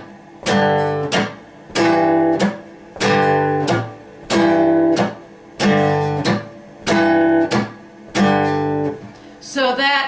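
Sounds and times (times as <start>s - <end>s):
acoustic guitar strumming blues: 0.0s - 9.4s.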